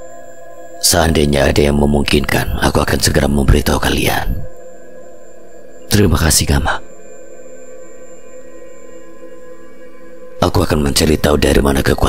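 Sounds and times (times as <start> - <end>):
dark ambient drone music: 0.0 - 12.0.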